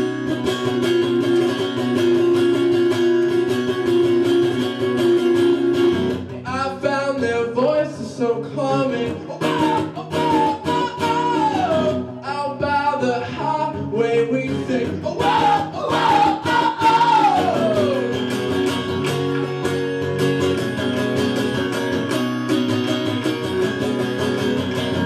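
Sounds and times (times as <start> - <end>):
strummed acoustic guitar: 0.0 - 25.0
man singing: 6.4 - 18.6.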